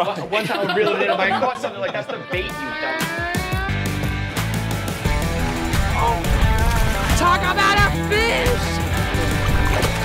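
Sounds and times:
music with bass and beat: 0:01.4 - 0:10.0.

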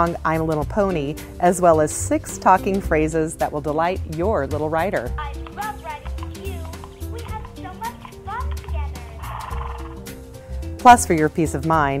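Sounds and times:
background music: 0:00.0 - 0:12.0
toy voice clip through speaker: 0:05.2 - 0:09.9.

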